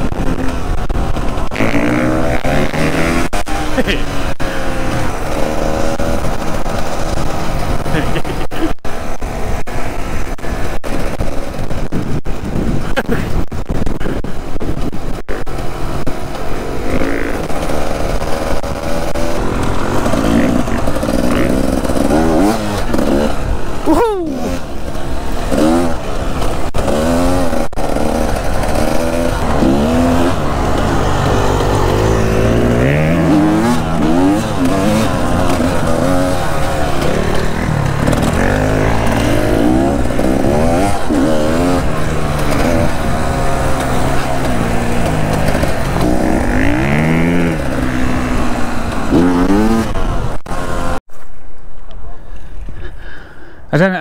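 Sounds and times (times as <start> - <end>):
dirt bike engine revving: 0.0 - 51.0.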